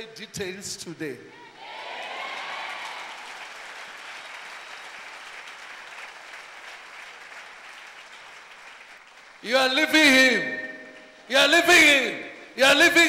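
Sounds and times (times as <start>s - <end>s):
crowd applause: 1.6s - 9.5s.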